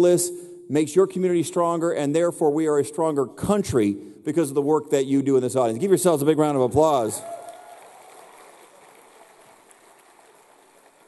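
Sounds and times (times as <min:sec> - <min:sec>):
faint audience applause: 0:07.0 - 0:11.0.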